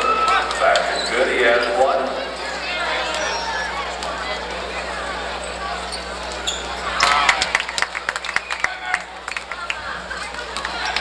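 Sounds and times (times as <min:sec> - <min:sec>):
people talking: 0:00.0 - 0:07.9.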